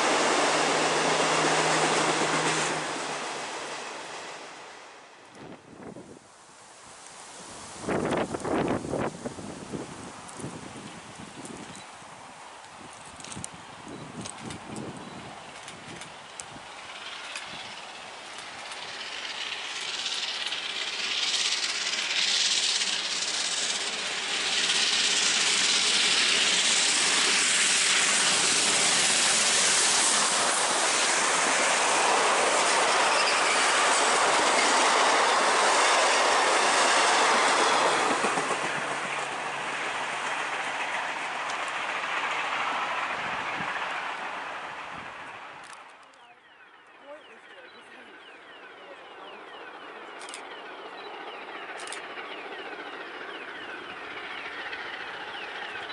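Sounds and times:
steam train passing: 0:00.0 - 0:55.9
train wheels rolling on rails: 0:00.0 - 0:55.9.

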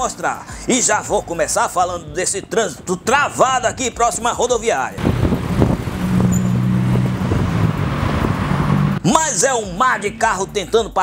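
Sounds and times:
cars creeping past: 0:05.0 - 0:09.0
low engine hum: 0:05.0 - 0:09.0.

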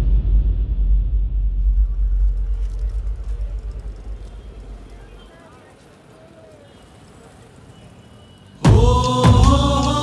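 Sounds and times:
low rumble of drums and bass: 0:00.0 - 0:04.6.

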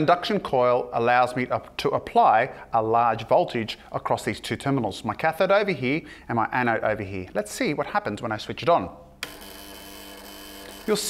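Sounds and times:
induction coil buzzing: 0:09.2 - 0:11.0.

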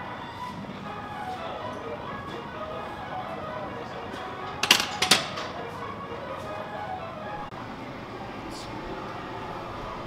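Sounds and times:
background music: 0:00.0 - 0:07.6
barbell clanking on rack: 0:04.5 - 0:05.6.

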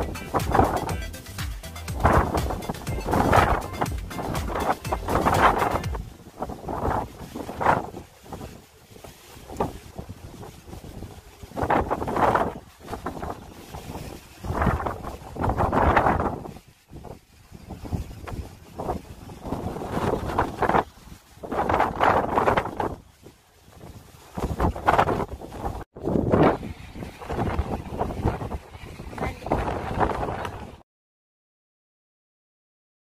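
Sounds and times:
strong wind gusting on microphone: 0:00.0 - 0:01.1, 0:01.8 - 0:30.8.

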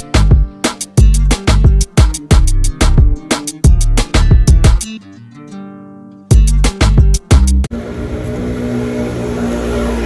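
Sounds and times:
street traffic: 0:07.6 - 0:10.0
vehicle engine hum: 0:07.6 - 0:10.0.

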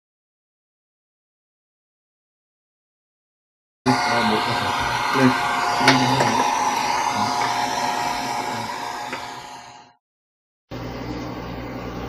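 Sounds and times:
hair dryer blowing: 0:03.9 - 0:10.0
washing machine humming: 0:03.9 - 0:10.0.

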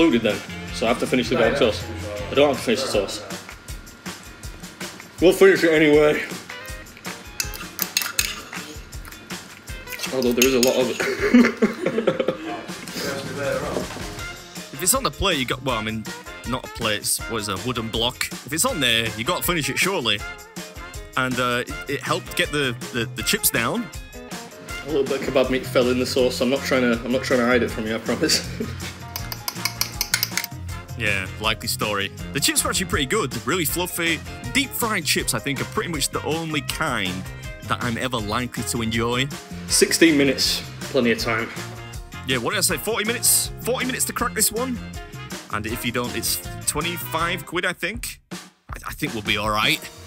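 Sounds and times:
background music: 0:00.0 - 0:50.0
cutlery scraping a ceramic ramekin: 0:07.4 - 0:08.6, 0:29.1 - 0:30.6.

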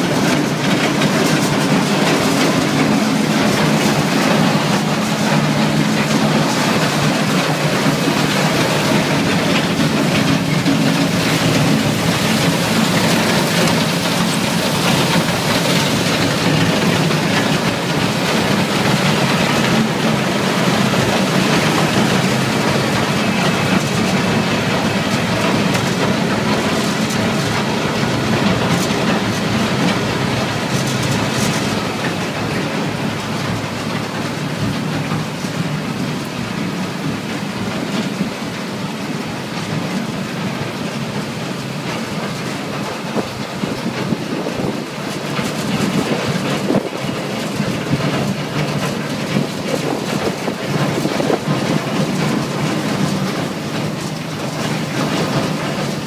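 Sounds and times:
dense mechanical rumble: 0:00.0 - 0:56.0.

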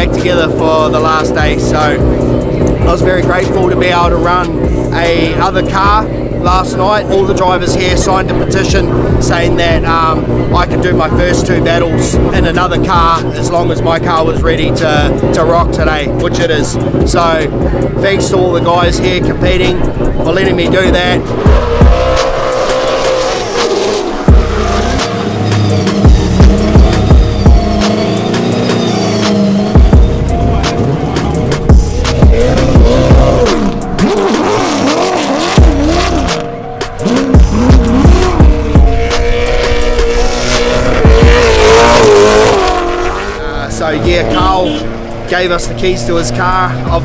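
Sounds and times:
background music with steady beat: 0:00.0 - 0:47.0
car engine revving: 0:00.0 - 0:47.0
tyres squealing: 0:21.2 - 0:30.2.

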